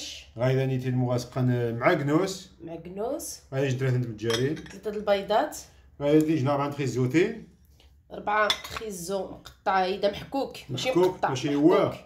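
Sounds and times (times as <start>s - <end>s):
dishes clinking: 4.2s - 5.0s, 8.4s - 9.0s.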